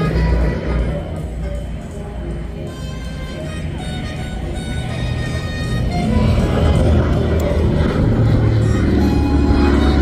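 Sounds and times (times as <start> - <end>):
music: 0.0 - 10.0
propeller aircraft engine drone: 0.0 - 10.0.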